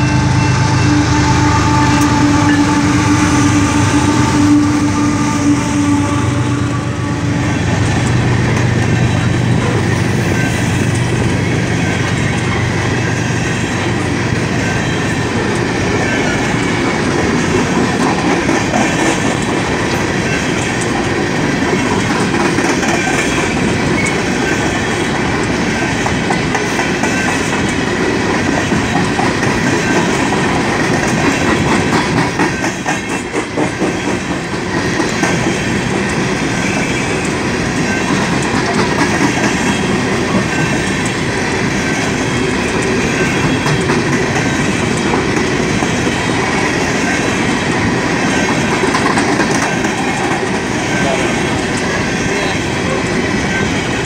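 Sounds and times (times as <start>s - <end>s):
freight cars rumbling on rails: 0.0s - 54.0s
wheels clickety-clack over track: 7.4s - 54.0s.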